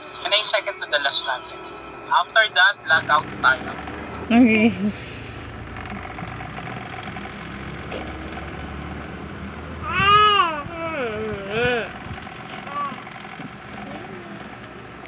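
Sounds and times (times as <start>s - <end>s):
low background hum: 0.0s - 15.0s
baby cooing and squealing: 9.8s - 11.9s, 12.6s - 13.0s.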